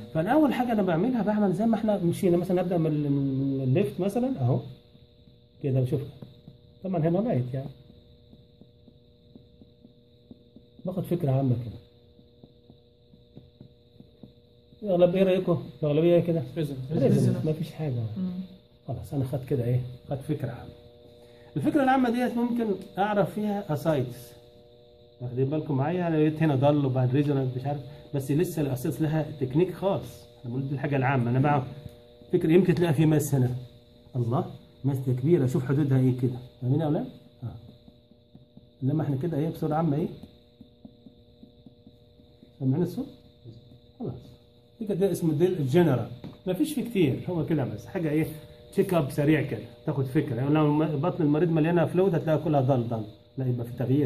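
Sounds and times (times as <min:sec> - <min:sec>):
steady electrical hum: 0:00.0 - 0:54.0
finger percussion taps on abdomen: 0:03.7 - 0:17.7, 0:18.5 - 0:54.0.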